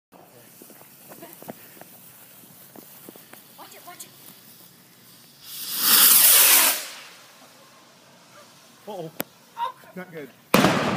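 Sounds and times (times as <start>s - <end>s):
firework fuse fizzing: 0.2s - 10.9s
firework launching with rushing hiss: 0.2s - 10.9s.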